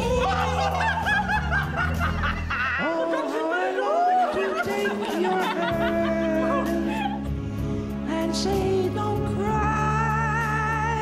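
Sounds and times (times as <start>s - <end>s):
man and woman laughing: 0.0s - 7.4s
karaoke backing track: 0.0s - 11.0s.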